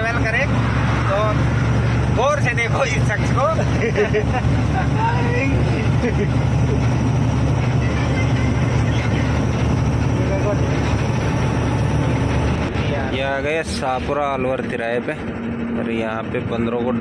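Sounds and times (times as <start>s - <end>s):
truck diesel engine droning: 0.0s - 17.0s.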